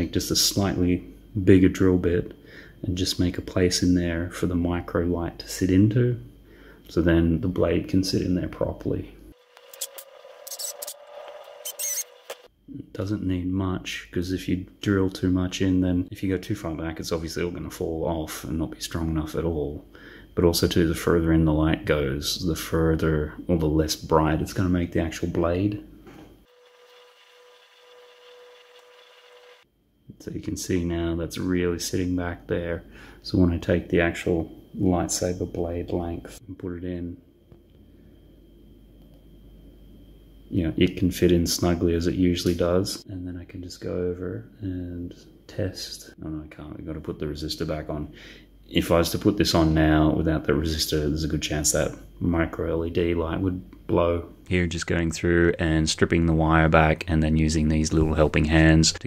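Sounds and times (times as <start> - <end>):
faint steady hum: 0.0 - 59.0
thin high-pitched whine: 8.3 - 13.2, 26.5 - 32.8
hand tools clicking and scraping: 9.4 - 12.5.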